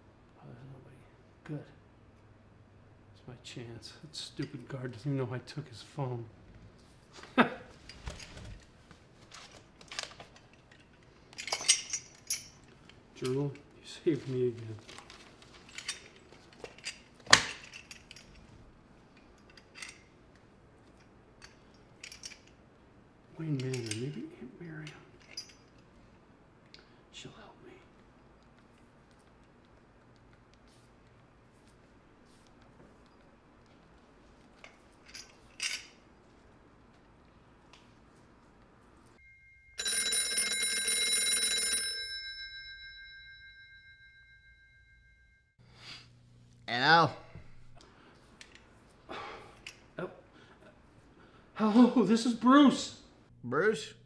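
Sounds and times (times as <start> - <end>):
metal chain and cuffs clinking: 10.0 - 13.7, 14.9 - 18.5, 19.1 - 20.3, 20.9 - 22.6, 23.4 - 25.9, 34.6 - 36.4.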